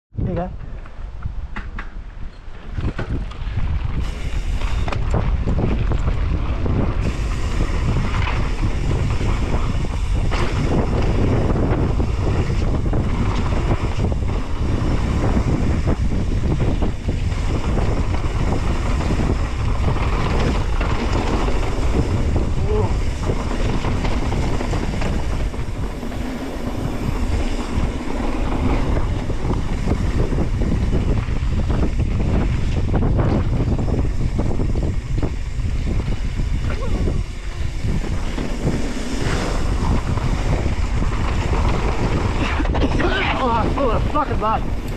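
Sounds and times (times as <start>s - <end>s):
wind noise on microphone: 0.1s - 44.9s
bike knocks and rattles: 1.2s - 44.9s.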